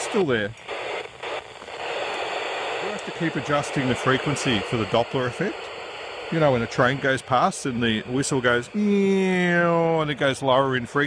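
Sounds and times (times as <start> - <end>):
radio receiver static hiss: 0.0 - 11.0.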